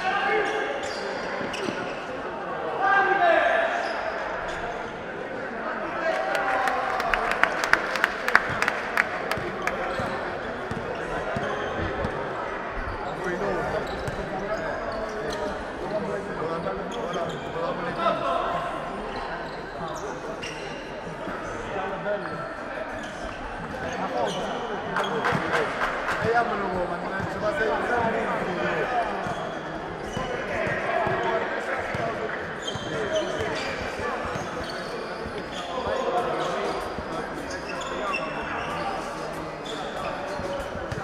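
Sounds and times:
players and spectators voices: 0.0 - 41.0.

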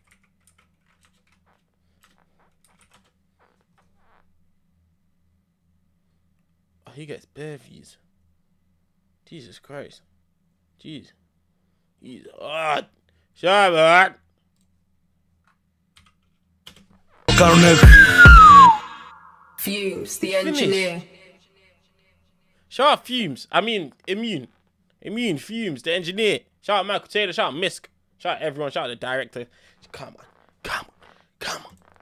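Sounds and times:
keyboard typing: 0.0 - 3.2.

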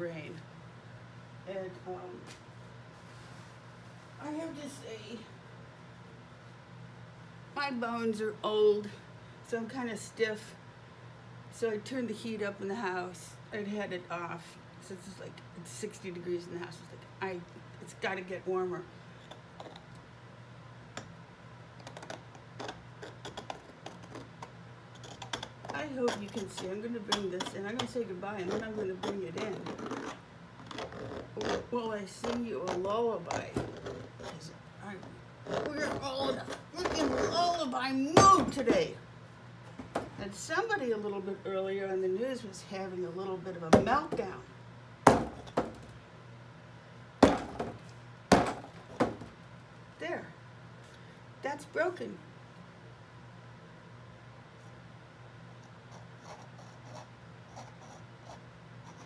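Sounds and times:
steady low hum: 0.0 - 59.0
metal pick scratching paint: 21.8 - 34.5, 35.4 - 37.4.

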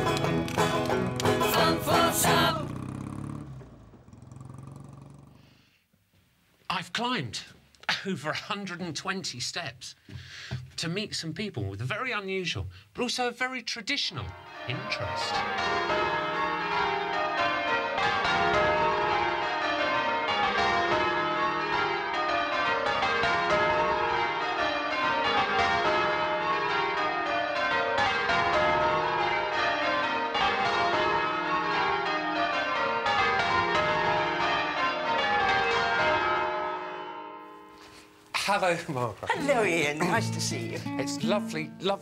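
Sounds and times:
church bells change ringing: 14.2 - 38.2, 39.9 - 42.0.

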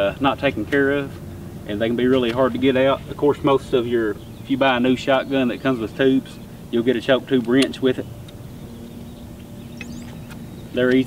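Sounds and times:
faint high bird chirps: 8.0 - 11.0.

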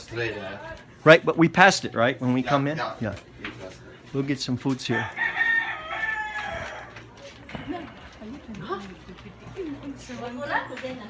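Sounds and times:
rooster crowing: 4.9 - 7.0.

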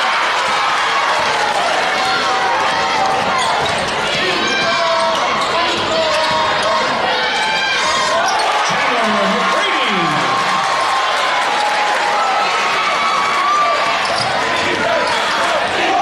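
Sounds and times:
crowd voices and shouts: 0.0 - 16.0.

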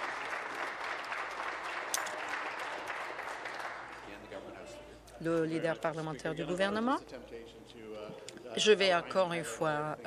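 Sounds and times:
dense applause: 0.0 - 4.1.

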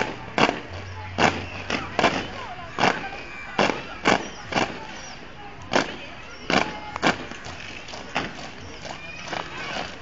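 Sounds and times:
boots stamping on brick paving: 0.0 - 10.0
voices in background: 0.0 - 10.0.

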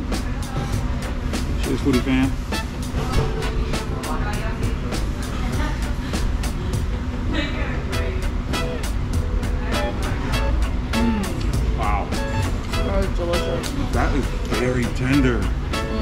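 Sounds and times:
low room rumble: 0.0 - 16.0
upbeat music with steady beat: 0.0 - 16.0.

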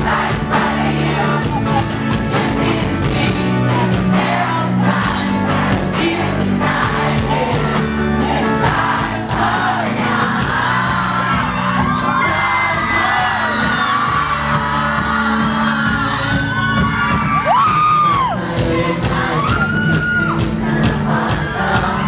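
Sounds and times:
strummed acoustic guitar: 0.0 - 12.1
crowd cheering and singing along: 0.0 - 22.0
man singing: 12.0 - 22.0.

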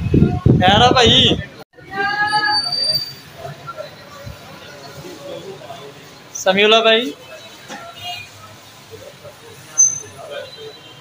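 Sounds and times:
faint voices: 0.0 - 11.0
shop background noise: 0.0 - 11.0.

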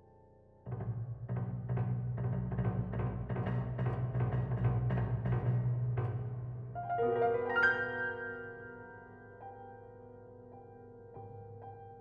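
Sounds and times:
piano playing low register: 6.8 - 12.0.

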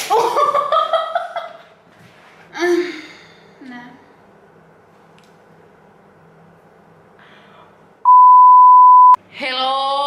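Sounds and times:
loud electronic bleep: 8.1 - 9.2.

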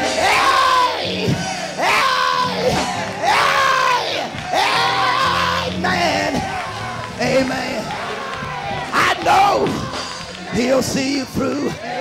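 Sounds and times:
crowd shouting: 0.0 - 12.0.

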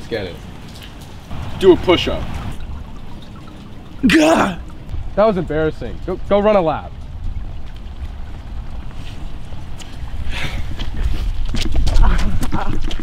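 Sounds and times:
wind buffeting microphone: 4.6 - 13.0.

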